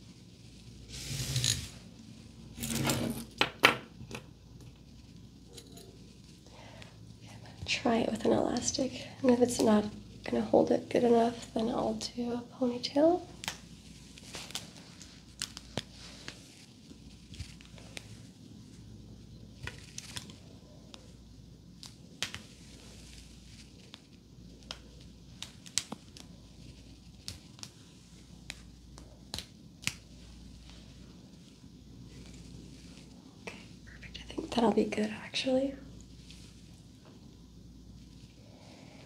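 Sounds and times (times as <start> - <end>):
hair rustling: 0.0 - 2.7, 4.5 - 6.5, 12.7 - 39.0
crisp crackles and clicks: 13.3 - 34.6.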